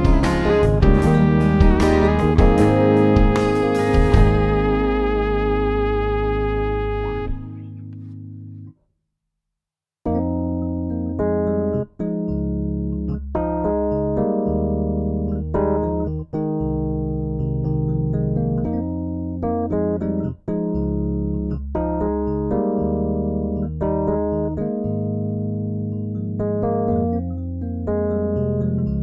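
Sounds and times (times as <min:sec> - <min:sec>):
piano chords: 0:00.0 - 0:08.7, 0:10.1 - 0:29.0.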